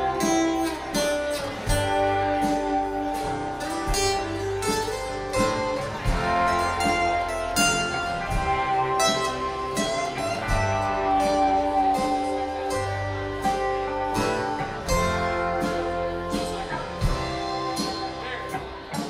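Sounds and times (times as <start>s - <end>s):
picked acoustic guitars: 0.0s - 19.0s
upright bass: 0.0s - 19.0s.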